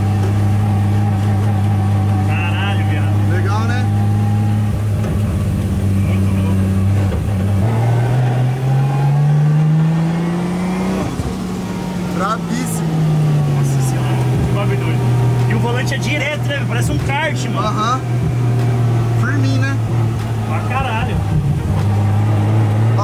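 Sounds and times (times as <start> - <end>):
car engine running and accelerating: 0.0 - 23.0.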